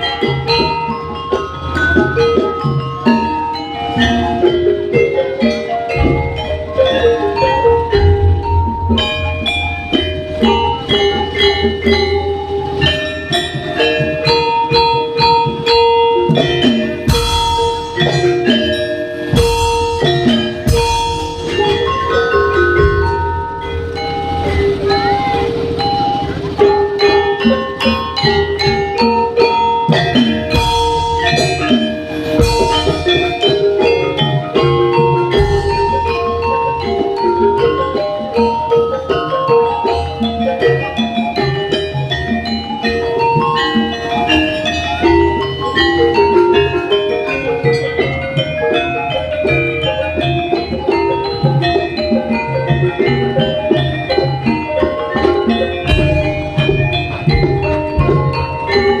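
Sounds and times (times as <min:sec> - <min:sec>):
gamelan metallophones struck: 0:00.0 - 0:59.0.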